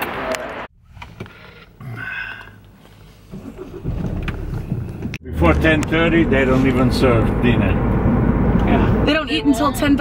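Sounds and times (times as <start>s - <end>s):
low rumble inside moving car: 3.2s - 10.0s.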